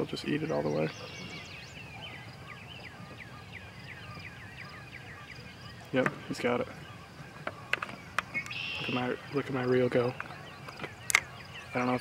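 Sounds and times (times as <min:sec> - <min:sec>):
bird chirping: 0:00.0 - 0:12.0
faint outdoor background noise: 0:00.0 - 0:12.0.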